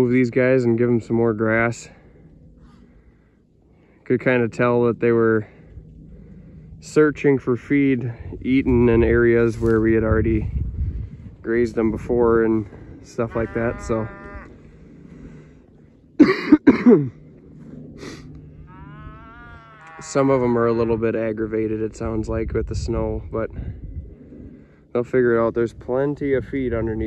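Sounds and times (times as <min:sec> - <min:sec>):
faint low rumble: 0:00.0 - 0:27.0
distant cow mooing: 0:13.1 - 0:15.3, 0:18.5 - 0:20.9.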